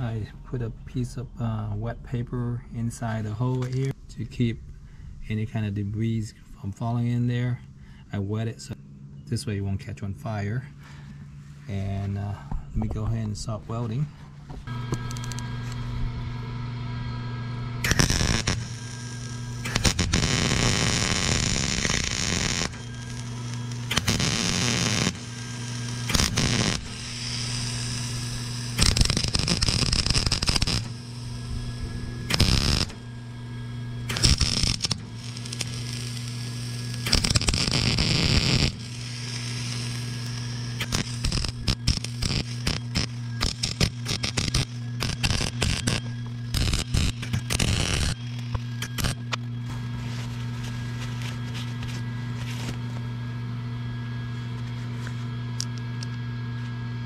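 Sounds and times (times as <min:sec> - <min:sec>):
welder arc crackling: 0:00.0 - 0:00.3, 0:14.6 - 0:53.4, 0:54.0 - 0:56.7
electrical hum: 0:00.0 - 0:57.0.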